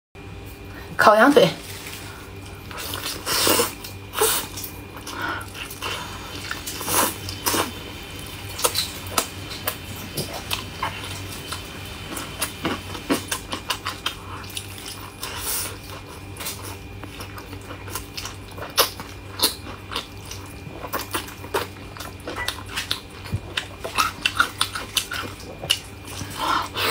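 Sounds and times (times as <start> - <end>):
chewing and smacking: 2.3 - 26.9.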